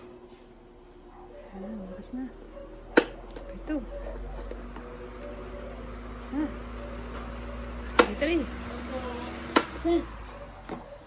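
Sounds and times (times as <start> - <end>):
electric fan motor hum: 0.0 - 11.0
voices talking: 1.2 - 11.0.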